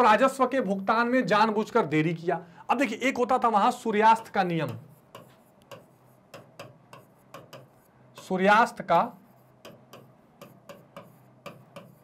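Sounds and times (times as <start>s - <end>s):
marker tip ticking on whiteboard: 4.2s - 7.8s, 9.6s - 12.0s.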